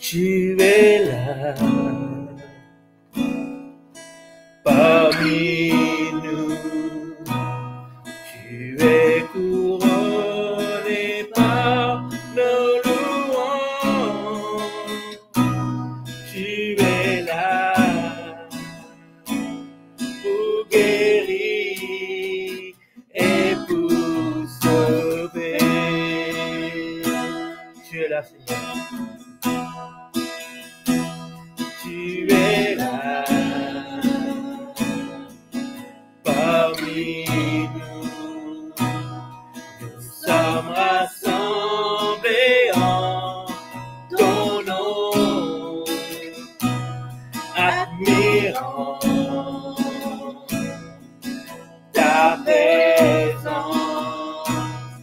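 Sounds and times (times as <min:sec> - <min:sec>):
man and woman singing: 0:00.0 - 0:02.4, 0:04.7 - 0:07.4, 0:08.4 - 0:15.1, 0:16.3 - 0:18.6, 0:20.2 - 0:29.0, 0:31.8 - 0:35.3, 0:36.3 - 0:39.0, 0:39.8 - 0:46.6, 0:47.5 - 0:50.8, 0:52.0 - 0:55.0
acoustic guitar strumming: 0:00.0 - 0:55.0.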